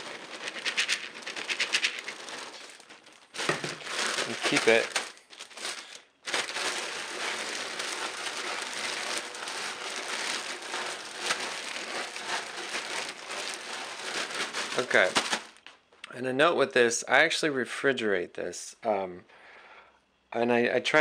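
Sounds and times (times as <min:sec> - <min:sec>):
kibble rattling in plastic bag: 0:00.0 - 0:15.6
plastic bag crinkling: 0:00.0 - 0:15.6.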